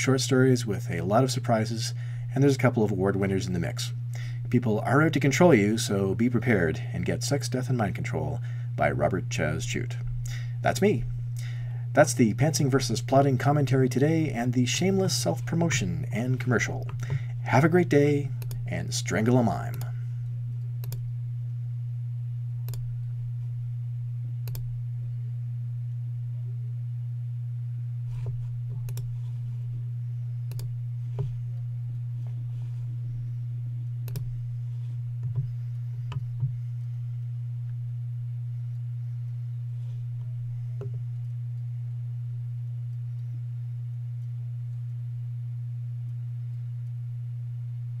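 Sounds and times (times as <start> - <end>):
low electrical hum: 0.0 - 48.0.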